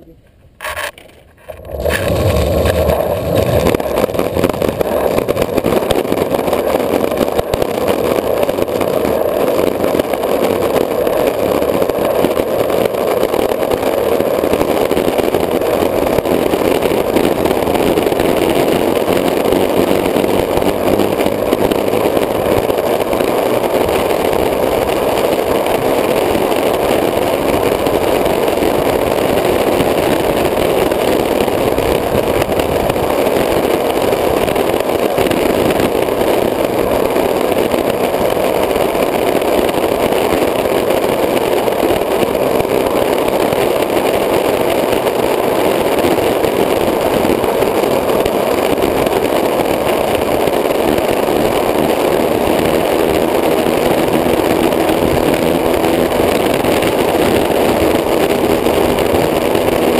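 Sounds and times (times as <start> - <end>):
longboard wheels rolling on asphalt: 0.0 - 59.9.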